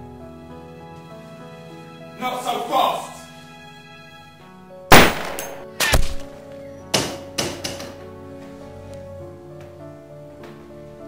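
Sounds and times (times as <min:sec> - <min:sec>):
sustained music: 0:00.0 - 0:11.0
gunshots: 0:04.9 - 0:06.3.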